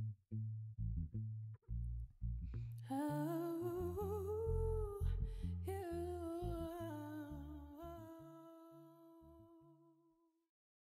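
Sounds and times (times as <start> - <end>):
bass guitar low notes: 0.0 - 8.2
woman singing wordless notes: 2.9 - 9.8.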